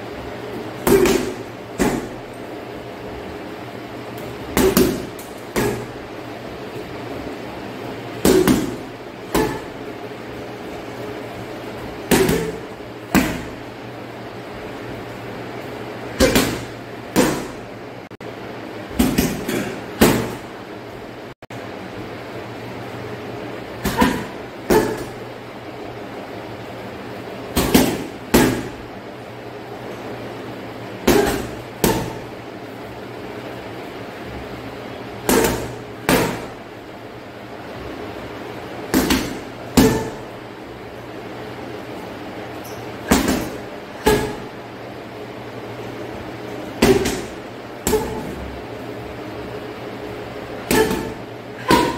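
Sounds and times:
steady low hum: 0.0s - 51.9s
punches on heavy bag: 38.9s - 40.2s, 46.8s - 48.3s, 50.7s - 51.9s.

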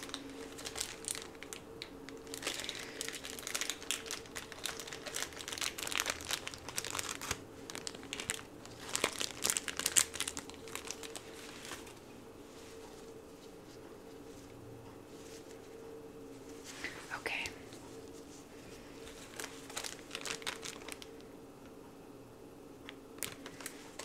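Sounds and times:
plastic crinkling and crackling: 0.0s - 12.1s, 18.2s - 21.3s, 22.9s - 24.0s.

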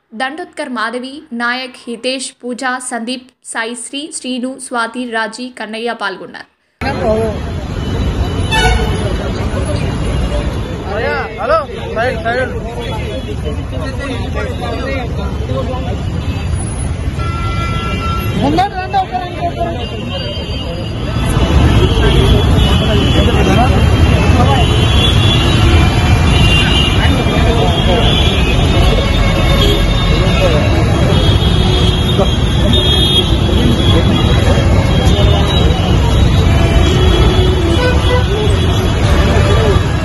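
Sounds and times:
rumble of passing vehicles: 6.7s - 40.0s
crowd chatter: 6.8s - 16.8s, 17.7s - 40.0s.

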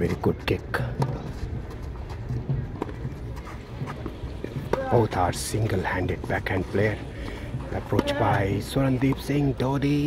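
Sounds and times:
tennis ball bouncing: 0.9s - 10.0s.

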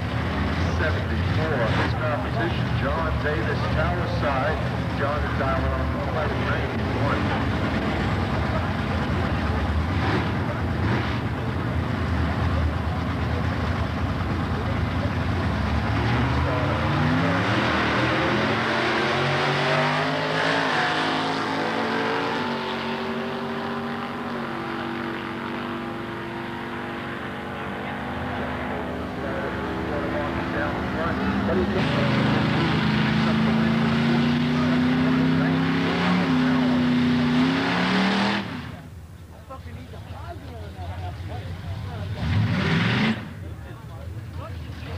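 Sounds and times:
cars accelerating through gears: 0.0s - 13.5s, 14.1s - 38.8s, 42.0s - 43.6s
drag car engines rumbling: 0.0s - 44.9s.

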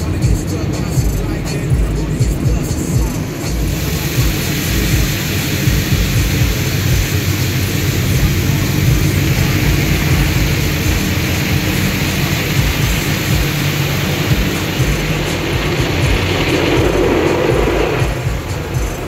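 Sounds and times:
rumble of wash machinery: 0.0s - 19.0s
wash brushes beating on car: 0.0s - 19.0s
water spray: 0.0s - 19.0s.

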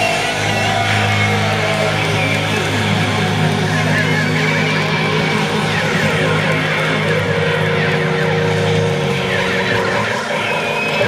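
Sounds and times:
live rock band electric guitars: 0.0s - 11.0s.

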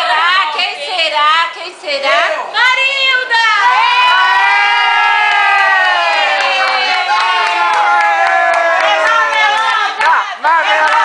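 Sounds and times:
women screaming and cheering: 3.3s - 11.0s.

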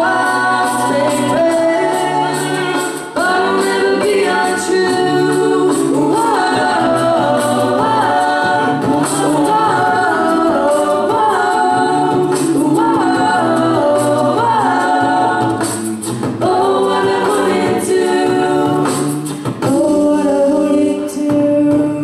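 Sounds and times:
female a cappella group singing: 0.0s - 22.0s.

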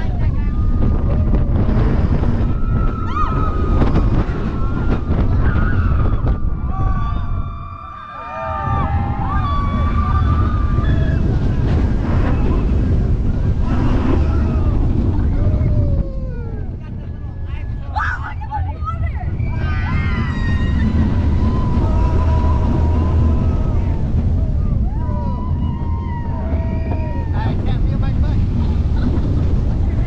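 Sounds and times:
roller coaster train rushing: 0.0s - 30.0s
wind blasting microphone: 0.0s - 30.0s
riders yelling and screaming: 0.1s - 27.7s.

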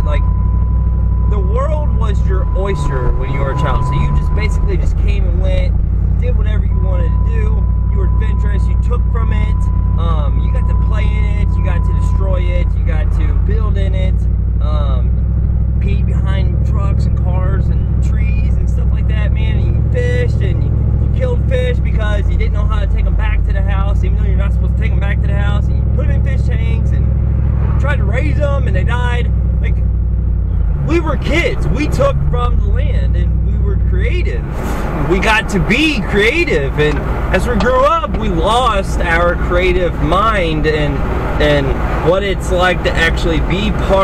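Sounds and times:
man talking: 0.0s - 0.3s, 1.3s - 15.2s, 15.8s - 27.1s, 27.7s - 29.8s, 30.8s - 44.0s
engine and road noise drone: 0.0s - 44.0s.

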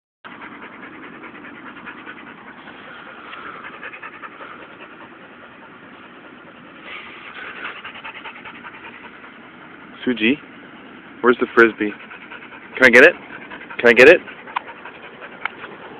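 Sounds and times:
dog panting: 0.3s - 15.9s.

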